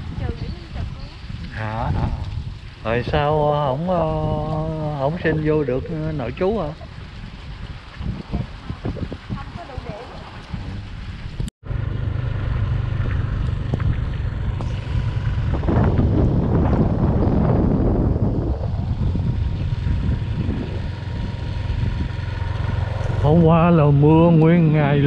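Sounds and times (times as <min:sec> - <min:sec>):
wind buffeting microphone: 0:00.0 - 0:25.0
motorbike engine running: 0:11.6 - 0:25.0.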